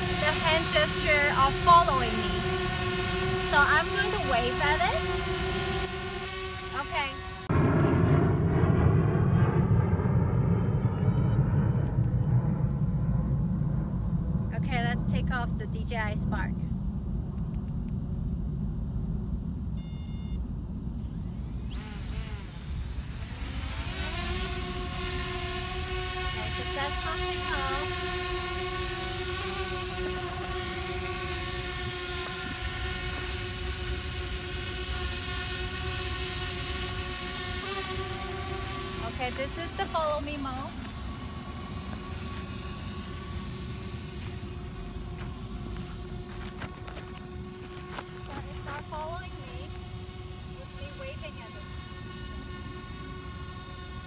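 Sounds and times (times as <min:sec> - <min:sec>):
drone propellers whining: 0:00.0 - 0:54.0
short high beep: 0:19.8 - 0:20.4
wind rumble on microphone: 0:24.4 - 0:34.6.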